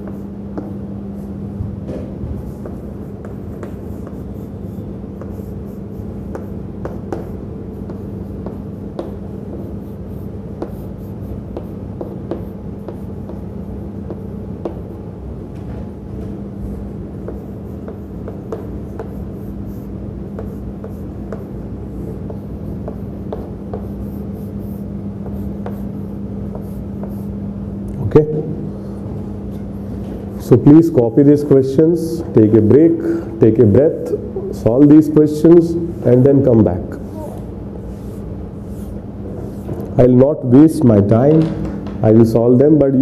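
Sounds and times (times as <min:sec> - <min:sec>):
chalk scratching on chalkboard: 0:00.0 - 0:01.4, 0:02.2 - 0:15.0, 0:16.6 - 0:27.4, 0:37.8 - 0:40.0
low room hum: 0:00.0 - 0:43.0.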